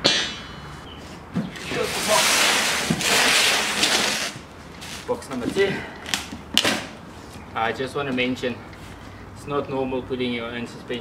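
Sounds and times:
cardboard box scraping on concrete: 1.6s - 5.0s.

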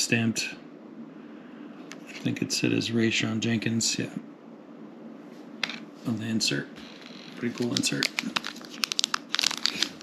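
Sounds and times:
foil pack crinkling: 7.4s - 10.0s.

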